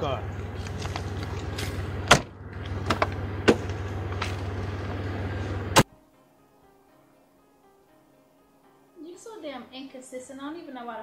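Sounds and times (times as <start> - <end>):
car engine running: 0.0 - 5.8
car door slamming: 0.6 - 5.9
soft background music: 4.7 - 11.0.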